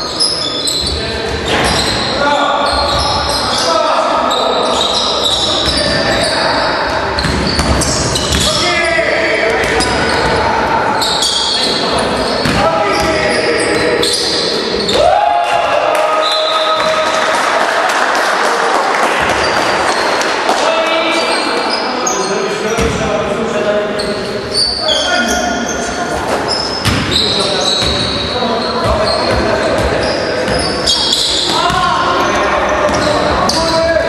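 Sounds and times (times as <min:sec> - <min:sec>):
sneaker squeaks: 0:00.0 - 0:15.1, 0:19.2 - 0:20.3, 0:20.9 - 0:23.0, 0:23.9 - 0:34.0
basketball bouncing on court: 0:07.2 - 0:08.6, 0:12.4 - 0:13.2, 0:26.8 - 0:30.8, 0:31.4 - 0:33.6.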